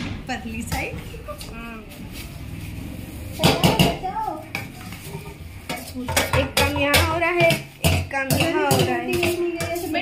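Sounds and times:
metal pots and spoon clattering: 3.4s - 10.0s.

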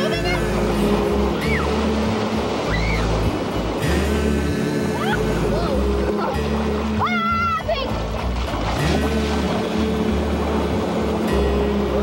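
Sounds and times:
breaking surf: 0.0s - 12.0s
music with bass and chords: 0.0s - 12.0s.

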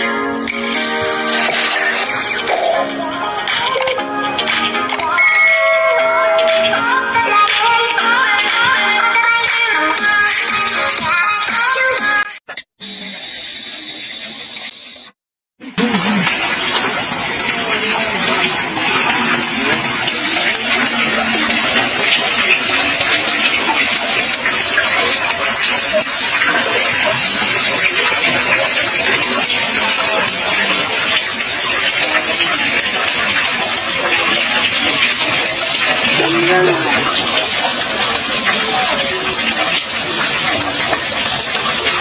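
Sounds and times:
water splashing into well: 15.6s - 42.0s.

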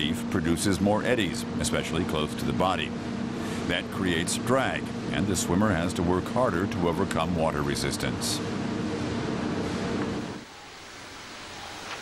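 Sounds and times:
steady hiss: 10.1s - 12.0s.

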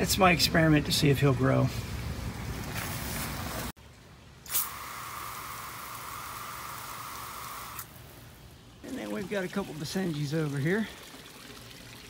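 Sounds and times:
garden hose splashing water: 2.6s - 12.0s.

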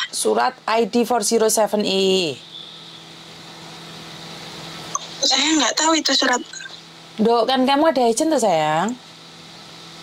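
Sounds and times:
background hum and hiss: 0.0s - 10.0s
faint continuous drone: 0.0s - 10.0s.

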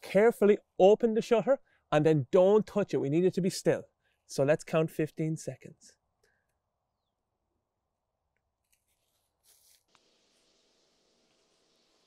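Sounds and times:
faint rustle: 8.6s - 11.8s
faint steady hiss: 8.9s - 12.0s.

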